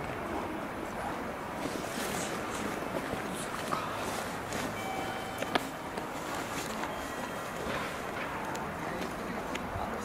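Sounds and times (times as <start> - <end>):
short high tone: 4.8 - 5.8.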